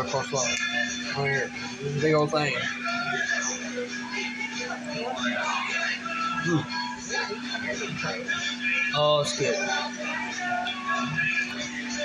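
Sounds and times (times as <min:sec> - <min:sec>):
background music with singing: 0:00.0 - 0:12.0.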